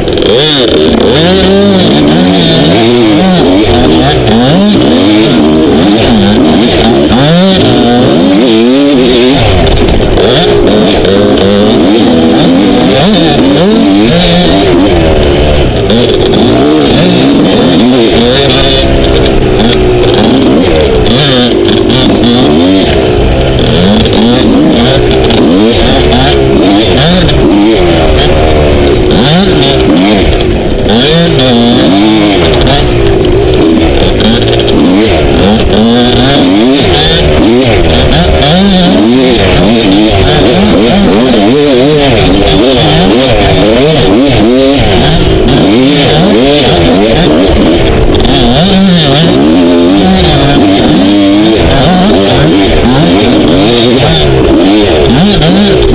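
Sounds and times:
dirt bike engine revving: 0.0 - 55.9.

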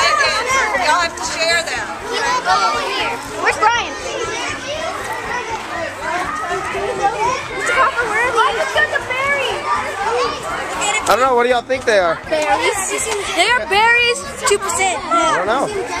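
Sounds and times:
children talking and calling out: 0.0 - 16.0.

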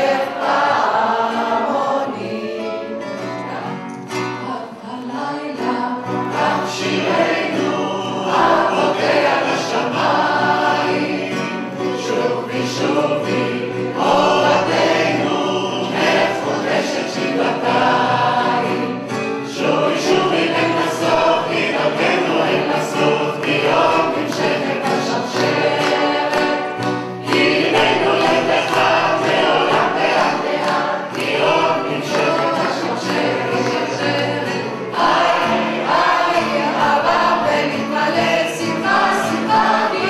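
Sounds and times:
crowd singing folk songs: 0.0 - 40.0.

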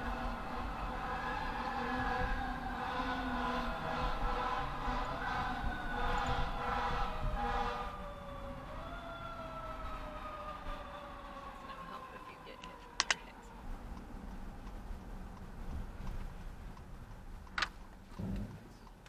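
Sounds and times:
fire engine siren wailing: 0.0 - 14.2
car road noise: 0.0 - 19.0.

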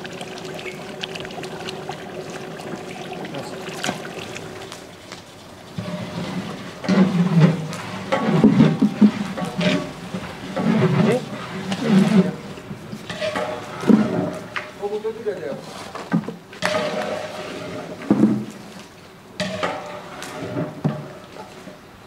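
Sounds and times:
wet feed sloshing in buckets: 0.0 - 21.9
voices talking: 0.8 - 4.7.

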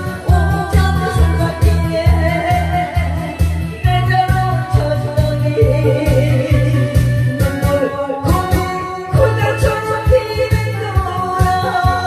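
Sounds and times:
amplified accompaniment with bass beat: 0.0 - 12.0
woman singing into a microphone: 0.0 - 12.0.

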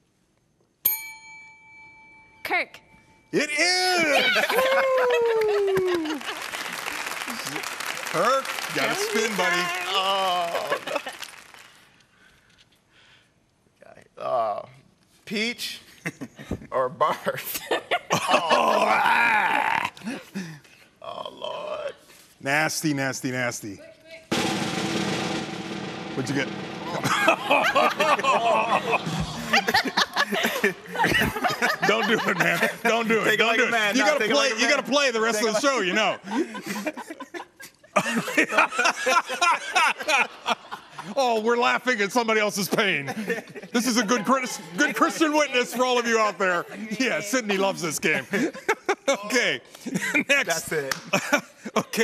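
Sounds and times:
desk service bell ringing: 0.8 - 3.4
snare drum roll: 24.3 - 29.8.

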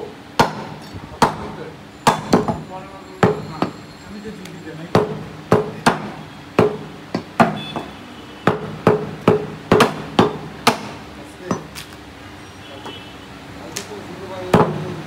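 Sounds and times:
cleavers chopping meat on wood: 0.3 - 2.6, 3.2 - 3.8, 4.9 - 11.9, 13.8 - 15.0.

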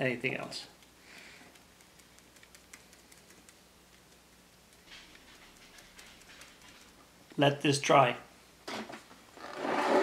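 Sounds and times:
plastic tray scraping on wood: 9.4 - 10.0.

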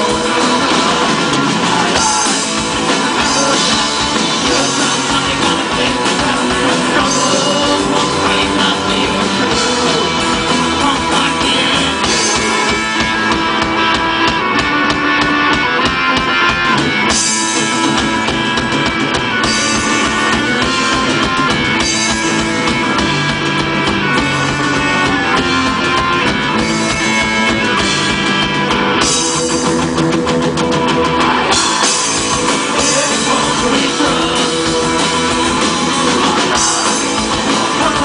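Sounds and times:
bass guitar: 0.0 - 38.0
distorted electric guitars: 0.0 - 38.0
drum kit pounding fast beat: 0.0 - 38.0.

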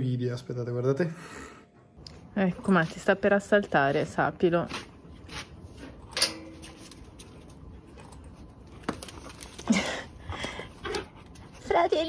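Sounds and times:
dogs panting: 7.2 - 12.0.

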